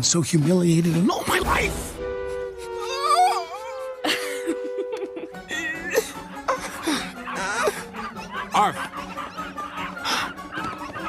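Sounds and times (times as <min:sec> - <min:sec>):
puppies yapping: 0:06.9 - 0:11.0.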